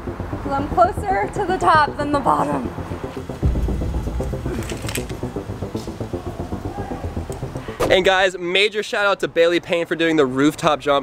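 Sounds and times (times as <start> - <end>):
staccato notes over low bass: 0.0 - 8.0.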